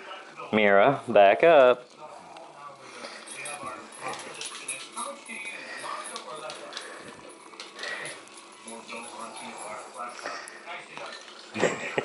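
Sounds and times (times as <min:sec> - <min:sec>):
dog claws clicking on floor: 0:03.0 - 0:09.8.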